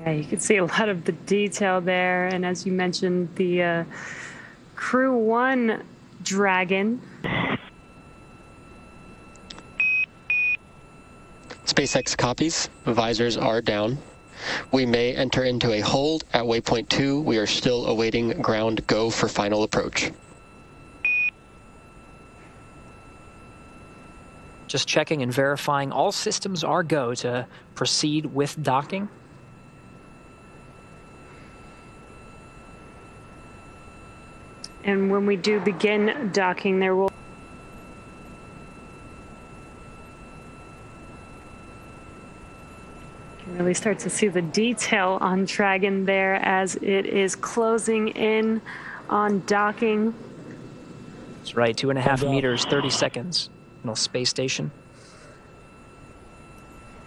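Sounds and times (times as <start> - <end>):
radio static: 6.3 - 7.9, 11.4 - 20.8, 34.7 - 37.2, 51.5 - 54.8
broadcast feed hiss: 8.4 - 33.4, 50.9 - 57.0
short high beeps: 52.2 - 53.2.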